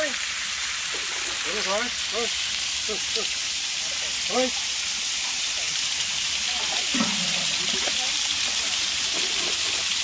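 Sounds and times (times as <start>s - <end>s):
water spray hissing: 0.0s - 10.0s.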